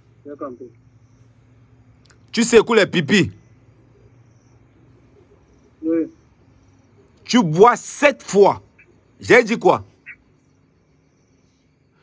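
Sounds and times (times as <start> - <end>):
faint high chirping: 0.0 - 12.0.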